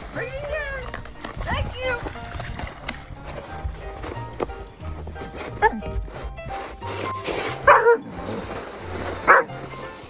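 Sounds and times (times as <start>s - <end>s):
background music: 0.0s - 10.0s
dog barking: 5.6s - 5.8s, 7.6s - 8.1s, 9.2s - 9.6s.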